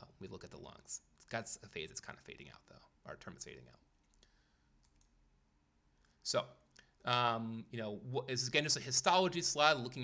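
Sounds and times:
faint clicks: 4.0s - 5.2s.

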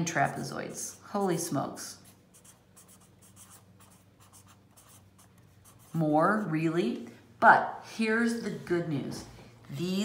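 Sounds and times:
marker writing on paper: 2.0s - 6.5s.

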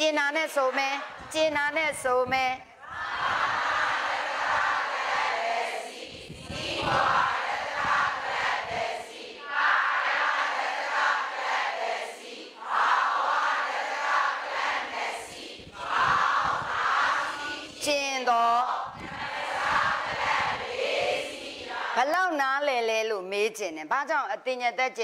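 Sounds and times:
many voices sounding together: 0.3s - 1.4s, 2.8s - 17.9s, 18.5s - 22.2s.

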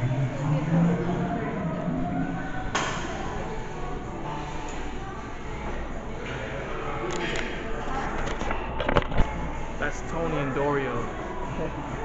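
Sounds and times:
chatter of busy room: 0.0s - 12.0s.

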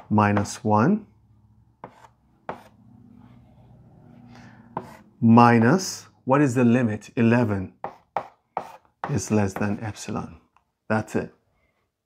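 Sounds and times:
chalk tapping on blackboard: 0.0s - 0.6s, 1.8s - 2.8s, 4.8s - 5.0s, 7.8s - 9.9s.

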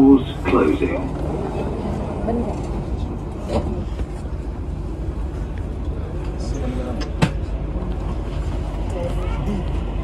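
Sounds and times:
train cabin low rumble: 0.0s - 10.0s
train doors closing: 2.3s - 4.1s, 6.2s - 9.7s.

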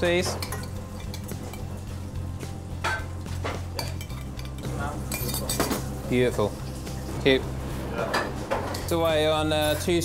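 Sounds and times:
low music: 0.0s - 10.0s
pots and pans clattering: 0.1s - 1.7s, 2.8s - 6.0s, 7.9s - 9.0s
metal spoons clinking: 0.2s - 1.8s, 2.8s - 5.9s.

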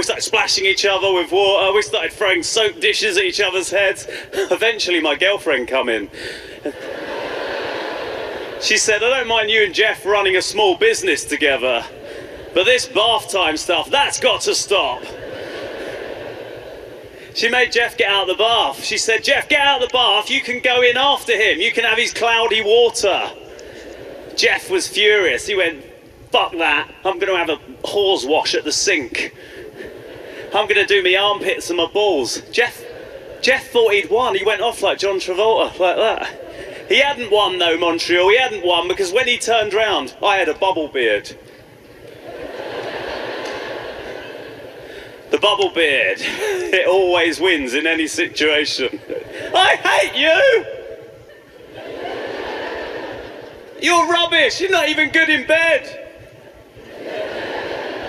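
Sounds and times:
large audience laughing: 6.4s - 9.1s, 11.8s - 13.0s, 14.5s - 17.4s, 23.5s - 24.7s, 29.4s - 31.5s, 32.7s - 33.5s, 35.6s - 37.3s, 42.0s - 45.3s, 48.8s - 50.1s, 50.8s - 53.8s, 56.5s - 58.0s.

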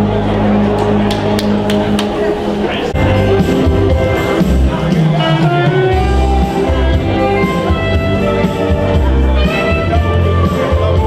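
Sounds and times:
murmur of voices: 0.0s - 11.0s
live dance band music: 0.7s - 11.0s.

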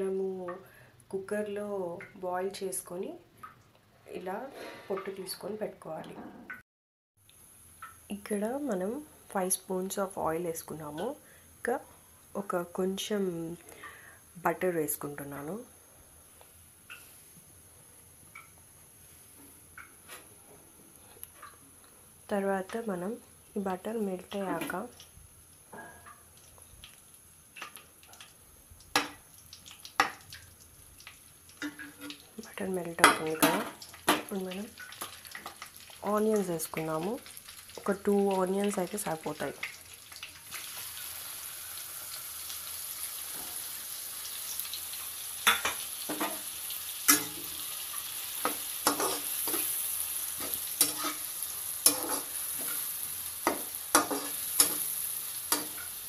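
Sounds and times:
butter sizzling in oil: 7.2s - 56.0s
person talking: 22.3s - 25.0s
metal utensils clanking on pan: 31.6s - 32.2s, 33.0s - 34.3s, 45.4s - 46.5s, 47.1s - 47.7s, 48.4s - 56.0s.

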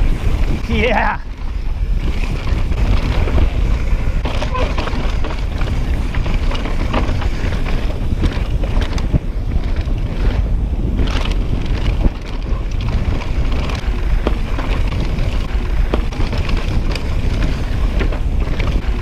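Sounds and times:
bike clicks and rattles: 0.0s - 19.0s
tyres rumbling on dirt trail: 0.0s - 19.0s
wind buffeting microphone: 0.0s - 19.0s.

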